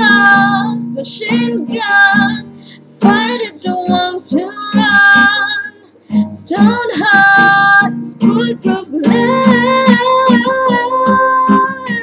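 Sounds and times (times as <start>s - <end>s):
strummed acoustic guitar: 0.0s - 12.0s
woman singing long notes: 0.0s - 12.0s.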